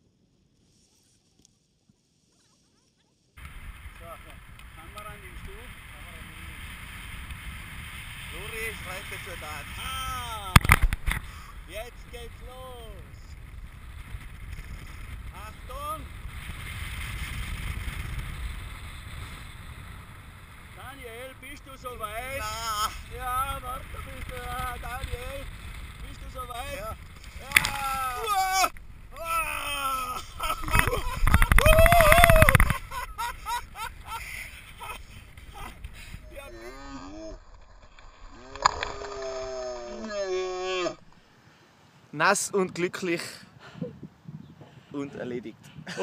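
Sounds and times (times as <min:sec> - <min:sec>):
wind rushing over microphone: 0:03.4 - 0:41.2, 0:43.8 - 0:46.0
man yelling: 0:09.7 - 0:10.6, 0:26.4 - 0:31.0, 0:31.6 - 0:32.6, 0:36.3 - 0:37.3, 0:39.4 - 0:41.0
man shouting: 0:26.6 - 0:30.4, 0:31.6 - 0:32.6, 0:36.3 - 0:37.3, 0:39.4 - 0:41.0.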